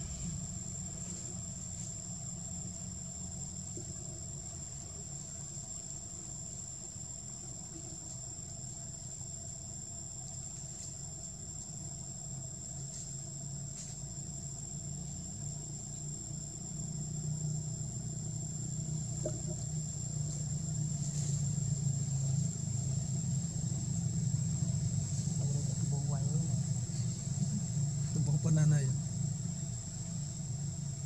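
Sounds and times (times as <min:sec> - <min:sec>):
low engine-like hum: 0:00.0 - 0:31.0.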